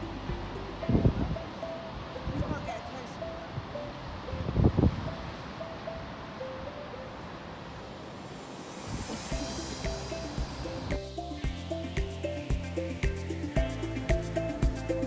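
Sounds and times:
simple melody background music: 0:00.0 - 0:07.9, 0:08.5 - 0:15.0.

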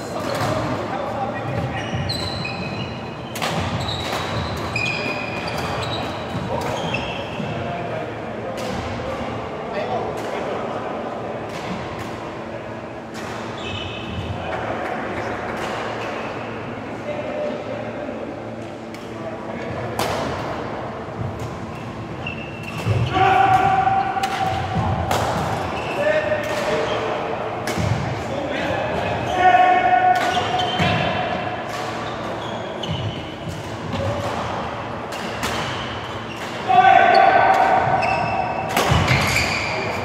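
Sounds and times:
court shoes squeaking: 0:00.0 - 0:07.8, 0:12.8 - 0:16.6, 0:21.1 - 0:40.0
voices in a hall: 0:00.0 - 0:40.0.

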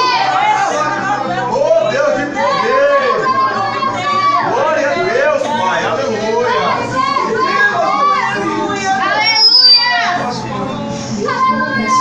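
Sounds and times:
congregation praying aloud: 0:00.0 - 0:12.0
short high whistle: 0:09.2 - 0:10.1.

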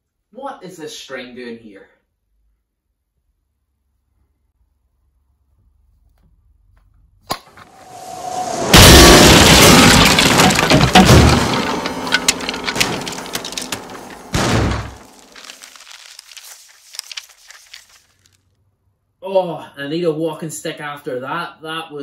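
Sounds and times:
rising rush: 0:07.7 - 0:08.9
piano crashing with pitched ringing: 0:08.6 - 0:15.9
rattling debris settling: 0:08.8 - 0:18.3.

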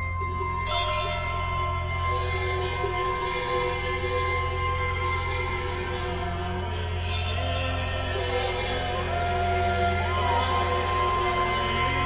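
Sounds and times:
bells ringing in held tones: 0:00.0 - 0:12.0
shimmering jingling: 0:00.0 - 0:12.0
steady low drone: 0:00.0 - 0:12.0.

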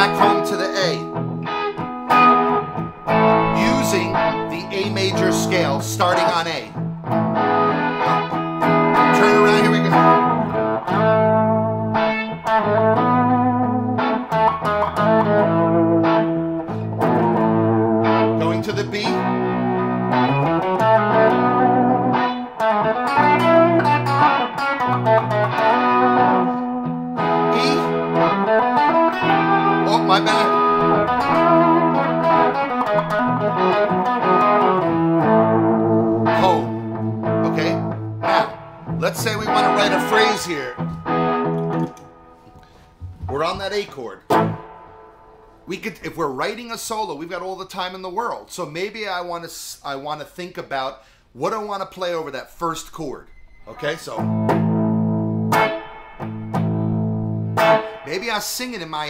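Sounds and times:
electric guitar single-note melody: 0:00.0 - 0:45.7, 0:53.3 - 0:59.0
looped backing chords: 0:00.0 - 0:45.8, 0:53.8 - 0:59.0.

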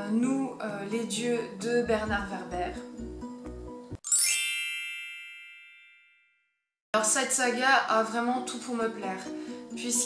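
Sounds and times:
bell-like chime: 0:04.0 - 0:06.6.

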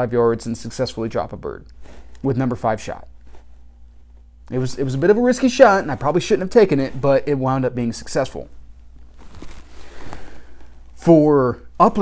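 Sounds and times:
steady low hum: 0:00.0 - 0:12.0
man breathing in softly: 0:09.7 - 0:10.8.

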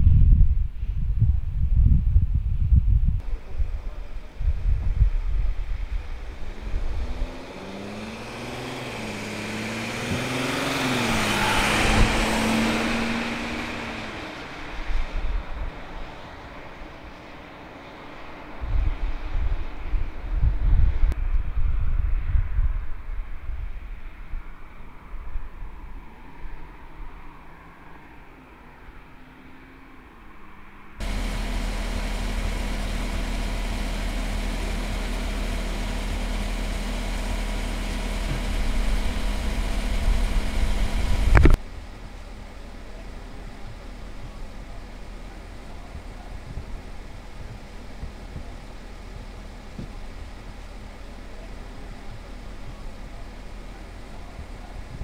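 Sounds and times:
low vehicle rumbling: 0:00.0 - 0:24.2, 0:31.0 - 0:55.0
engine idling hum: 0:01.8 - 0:17.2, 0:31.0 - 0:55.0
ambulance driving past: 0:03.2 - 0:18.6, 0:31.0 - 0:55.0.

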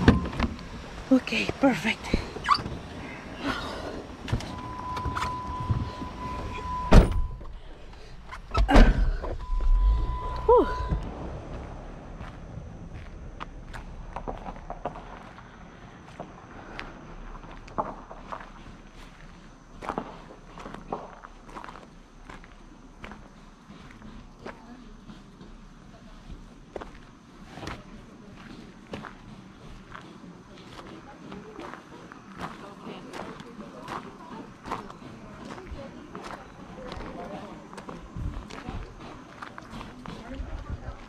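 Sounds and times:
faint high whine: 0:00.0 - 0:25.0
electronic beep: 0:04.5 - 0:07.5, 0:09.4 - 0:11.1
heavy car door thump: 0:06.8 - 0:07.5.

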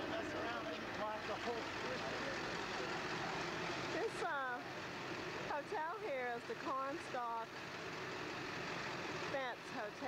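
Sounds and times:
voices: 0:00.0 - 0:04.8, 0:05.4 - 0:07.6, 0:09.3 - 0:10.0
vehicle engine running: 0:00.0 - 0:10.0.

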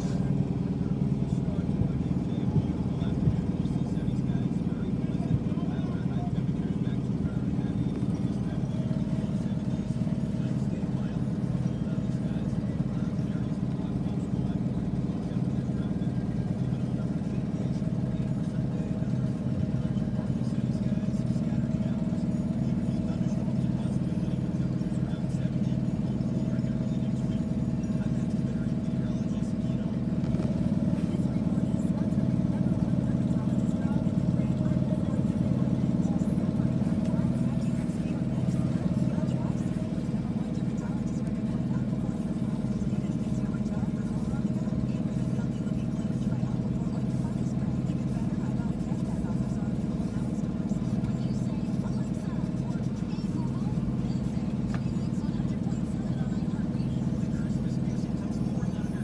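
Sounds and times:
car cabin hum: 0:00.0 - 0:59.0
indistinct talk: 0:00.0 - 0:59.0.

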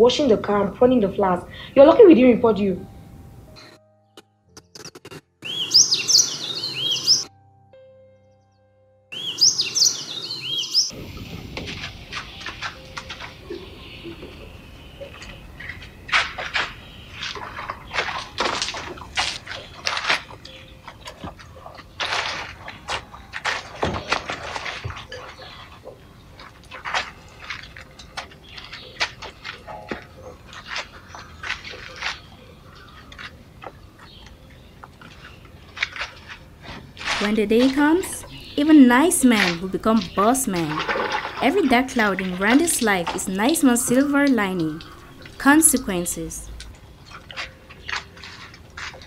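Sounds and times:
songbirds chirping: 0:05.4 - 0:49.0
man chewing noisily: 0:11.0 - 0:38.6, 0:44.8 - 0:45.4, 0:46.5 - 0:49.0.

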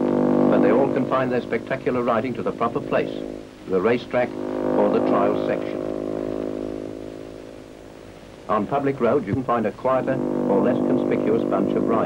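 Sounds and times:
racing motorcycle engine passing: 0:00.0 - 0:12.0.

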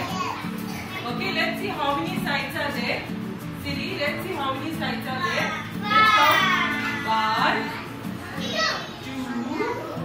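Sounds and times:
young children chattering: 0:00.0 - 0:01.7, 0:05.0 - 0:10.0.

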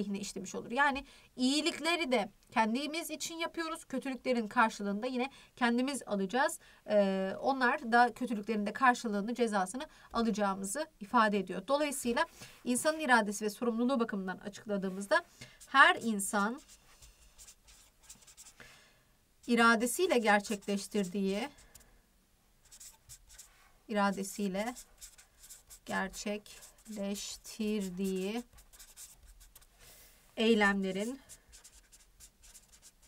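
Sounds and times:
marker scratching on paper: 0:14.9 - 0:18.6, 0:19.4 - 0:21.8, 0:22.6 - 0:29.8, 0:30.7 - 0:33.0.

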